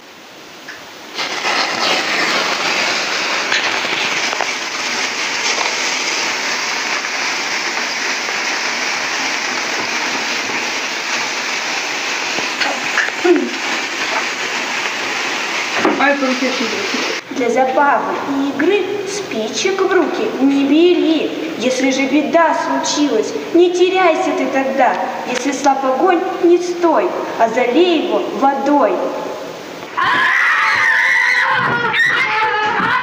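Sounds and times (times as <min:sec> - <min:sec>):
sparklers crackling hiss: 0:00.0 - 0:33.0.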